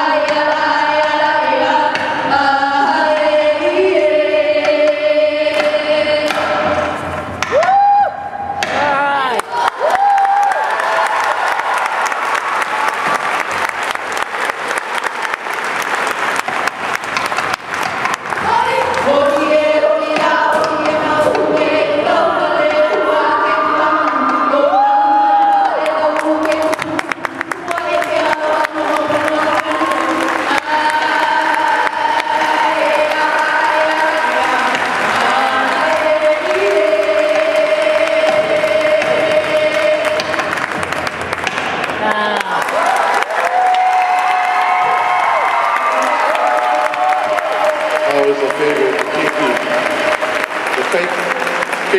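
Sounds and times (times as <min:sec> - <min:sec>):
group chanting long notes: 0:00.0 - 0:51.9
crowd cheering: 0:07.4 - 0:19.5, 0:23.2 - 0:51.9
applause: 0:09.3 - 0:19.1, 0:26.2 - 0:36.6, 0:39.0 - 0:51.9.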